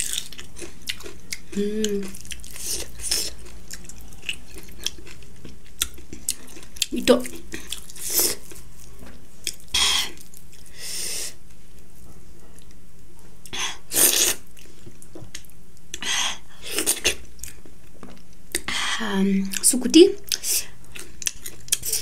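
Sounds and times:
person chewing: 0:00.0 - 0:11.4, 0:13.4 - 0:18.7, 0:20.2 - 0:22.0.

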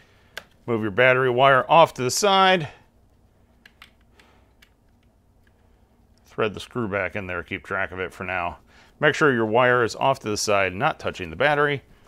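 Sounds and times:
faint clicks from handling cable: 0:03.0 - 0:06.3.

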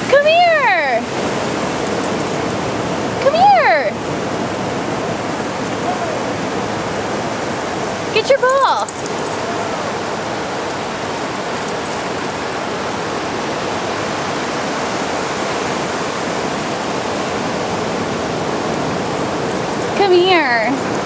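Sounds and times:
ocean surf washing in shallows: 0:00.0 - 0:21.0.

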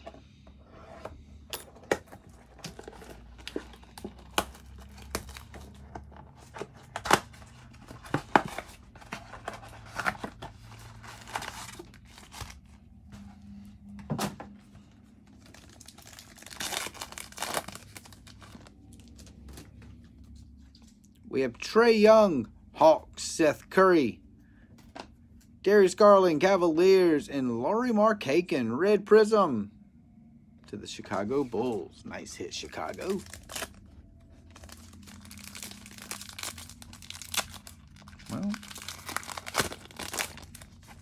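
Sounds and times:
foil packs crinkling and ripping: 0:02.7 - 0:05.8, 0:06.5 - 0:12.7, 0:15.2 - 0:19.7, 0:32.6 - 0:41.0
plastic wrap and cardboard tearing: 0:15.3 - 0:19.2, 0:32.7 - 0:33.8, 0:34.5 - 0:41.0.

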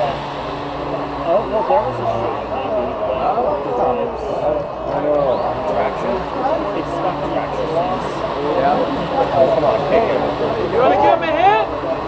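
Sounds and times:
crowd talking: 0:00.0 - 0:12.0
steady low hum: 0:00.0 - 0:12.0.

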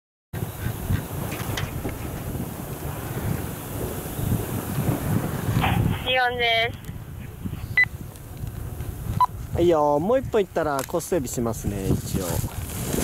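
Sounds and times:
wind buffeting microphone: 0:00.4 - 0:13.0.

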